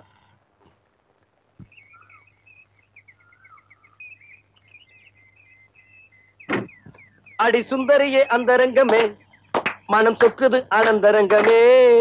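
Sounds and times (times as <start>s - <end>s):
faint birds chirping: 0.0s - 12.0s
dull thump: 6.5s - 7.0s.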